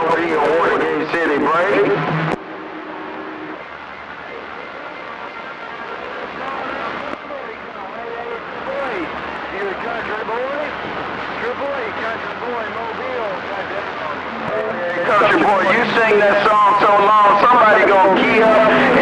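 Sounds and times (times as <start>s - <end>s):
faint garbled radio voices: 0.0s - 19.0s
radio static hiss: 0.0s - 19.0s.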